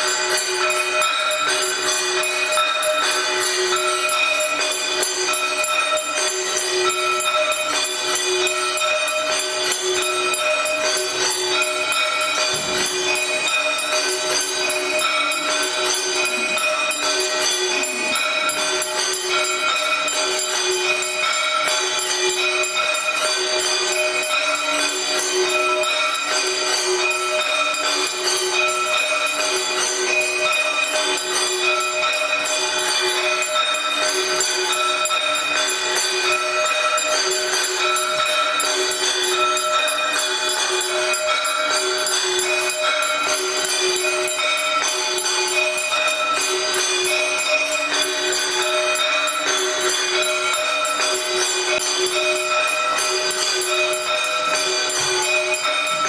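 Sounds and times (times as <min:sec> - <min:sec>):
bells jingling: 0:00.0 - 0:56.0.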